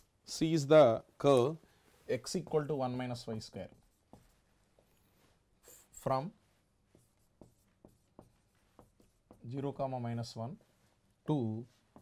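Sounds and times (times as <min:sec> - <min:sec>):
marker scratching on whiteboard: 0:02.1 - 0:09.8, 0:11.6 - 0:12.0.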